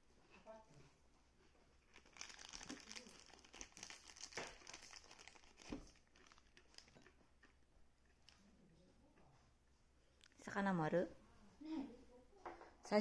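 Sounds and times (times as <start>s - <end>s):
plastic wrapper crinkling: 1.8s - 7.6s.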